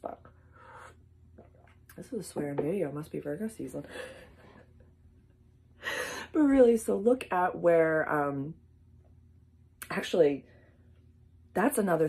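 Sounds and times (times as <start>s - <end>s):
woman talking: 0.0s - 0.3s, 1.9s - 4.2s, 6.0s - 8.6s, 9.8s - 10.5s, 11.5s - 12.0s.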